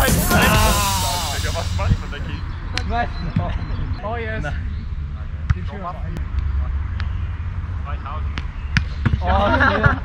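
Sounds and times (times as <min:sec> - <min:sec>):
players shouting: 0:00.0 - 0:01.8
background music: 0:00.0 - 0:01.9.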